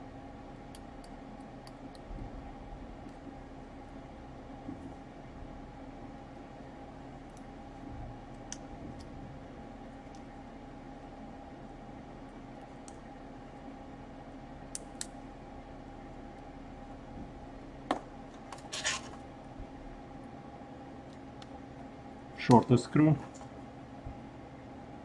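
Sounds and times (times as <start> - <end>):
steady low hum: 0.0 - 25.0
fingers scratching inside laptop: 18.6 - 19.2
short scrape: 18.7 - 19.2.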